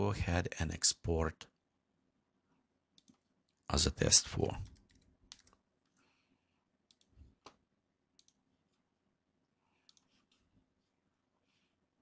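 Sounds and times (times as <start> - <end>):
computer keyboard and mouse clicks: 3.0 - 3.6, 4.6 - 6.0, 6.9 - 7.6, 8.2 - 8.4.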